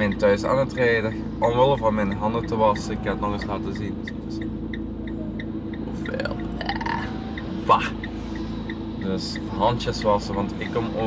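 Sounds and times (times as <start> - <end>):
light ticking: 0.0 - 11.0
van engine running: 0.0 - 11.0.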